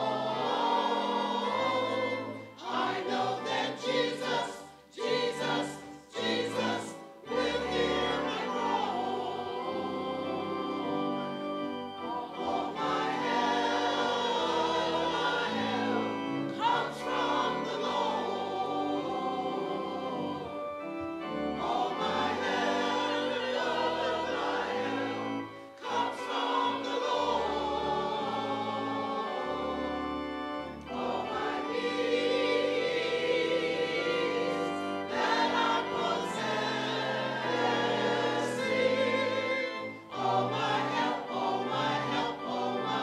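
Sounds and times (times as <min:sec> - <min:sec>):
choir and congregation singing hymn: 0:00.0 - 0:43.0.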